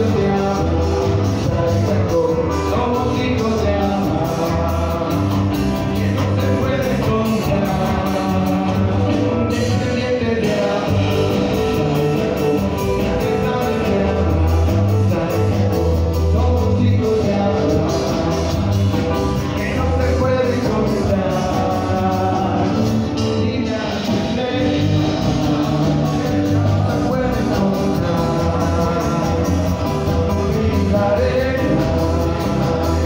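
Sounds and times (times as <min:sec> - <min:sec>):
bass: 0:00.0 - 0:33.0
guitar: 0:00.0 - 0:33.0
live band worship song: 0:00.0 - 0:33.0
voices singing: 0:00.0 - 0:33.0.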